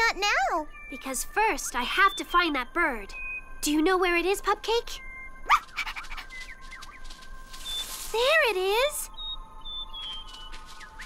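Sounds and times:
soft background music: 0.0s - 11.0s
cartoon bird chirps: 5.4s - 6.5s
leaves rustling: 5.4s - 11.0s.

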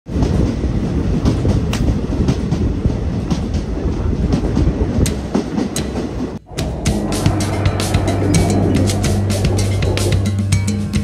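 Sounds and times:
train rumbling on track: 0.1s - 11.0s.

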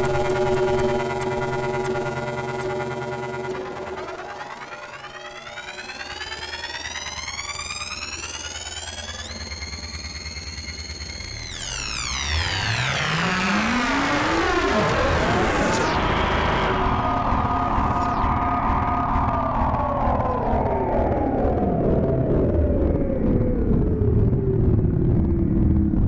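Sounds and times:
electronic synthesizer music: 0.0s - 23.8s.

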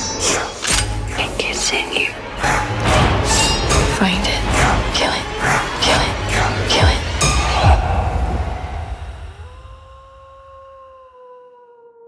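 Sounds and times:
person whispering: 0.0s - 2.2s, 4.0s - 7.8s
low droning film score: 0.0s - 12.0s.

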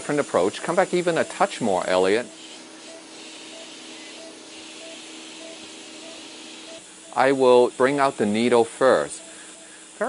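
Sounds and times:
background hiss: 0.0s - 10.0s
patient monitor beeps: 1.0s - 7.6s, 8.3s - 9.8s.

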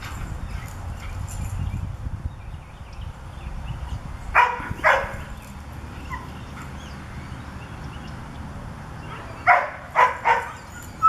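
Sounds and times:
dog barking: 4.4s - 5.3s, 9.2s - 10.6s.

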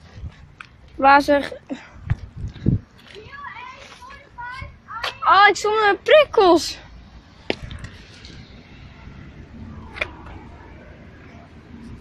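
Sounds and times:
quiet street background: 0.0s - 12.0s
distant high-pitched voices: 3.1s - 6.9s.

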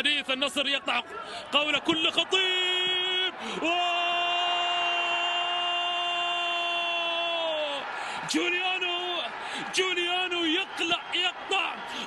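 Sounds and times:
male commentator's long goal cry: 0.9s - 12.0s.

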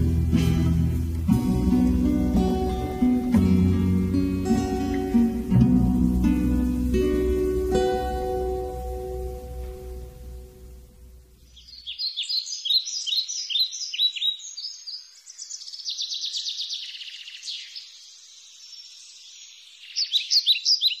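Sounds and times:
guitar music: 0.0s - 11.4s
songbirds chirping and trilling: 0.0s - 21.0s.

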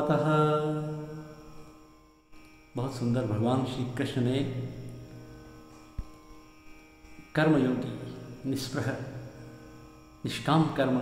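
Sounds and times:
man chanting: 0.0s - 1.4s, 2.8s - 5.0s, 7.3s - 9.3s, 10.2s - 11.0s.

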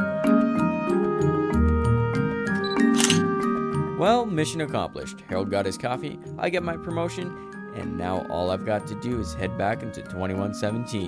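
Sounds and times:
camera shutter click: 2.5s - 3.3s.

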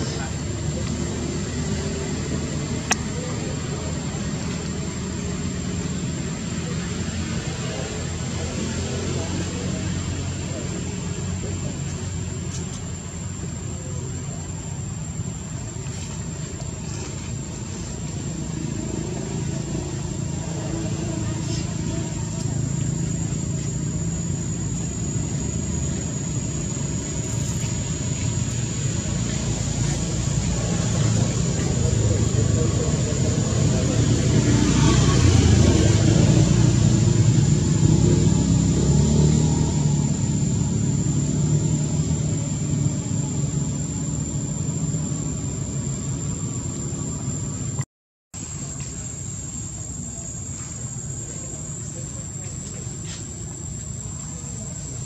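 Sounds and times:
vehicle engine rumble: 0.0s - 55.0s.

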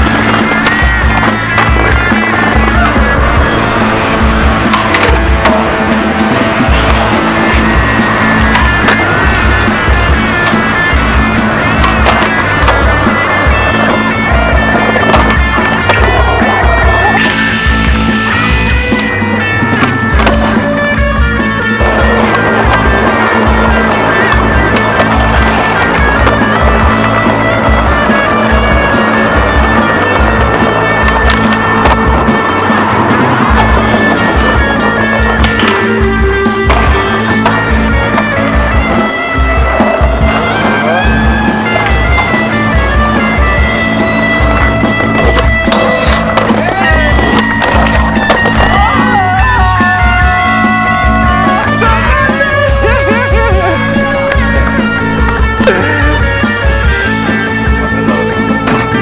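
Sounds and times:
music with steady beat: 0.0s - 59.0s
skateboard clacking: 0.0s - 59.0s
skateboard wheels rolling on stone: 0.0s - 59.0s.

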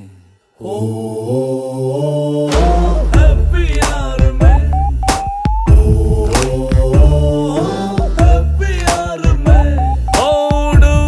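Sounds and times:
chant-like vocal chord: 0.0s - 4.4s, 5.7s - 8.8s
film song music: 2.5s - 11.0s.

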